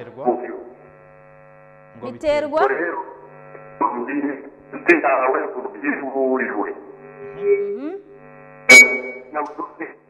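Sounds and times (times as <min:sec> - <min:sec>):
electrical hum: 0:00.0 - 0:10.0
person speaking: 0:02.0 - 0:02.8.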